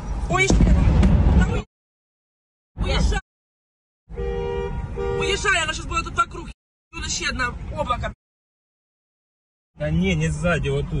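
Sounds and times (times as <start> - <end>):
street traffic: 0.0 - 1.7, 2.7 - 3.3, 4.0 - 8.2, 9.8 - 11.0
car horn honking: 4.1 - 5.8.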